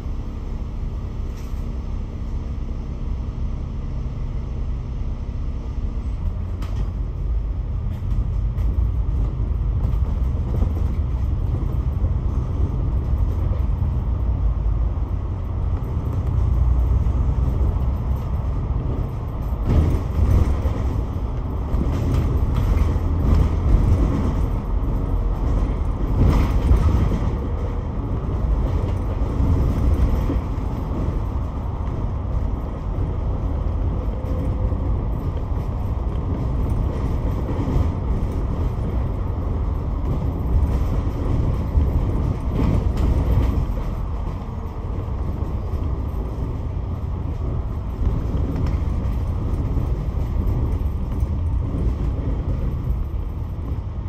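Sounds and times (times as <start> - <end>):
bus diesel engine: 0.0 - 54.0
road noise: 0.0 - 54.0.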